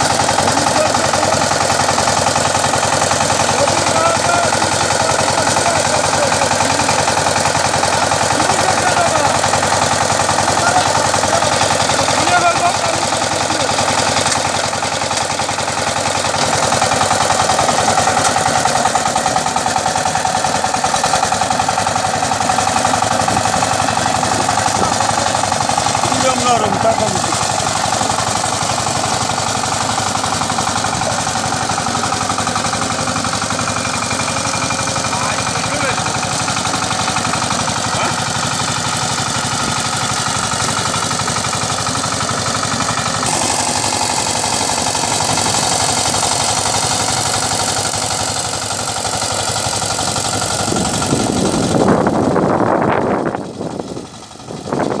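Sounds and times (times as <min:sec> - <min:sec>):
power tiller diesel engine running: 0:00.0 - 0:55.0.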